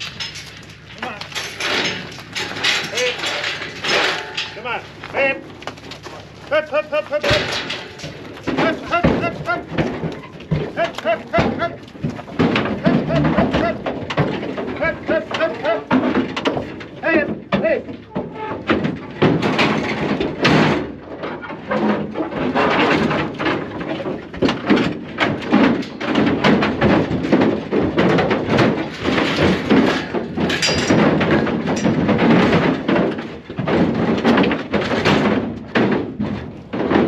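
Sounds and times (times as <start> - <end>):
hooves knocking on trailer: 0.0 - 37.0
people's voices: 1.0 - 2.0, 2.6 - 5.6, 6.4 - 16.2, 17.0 - 18.2.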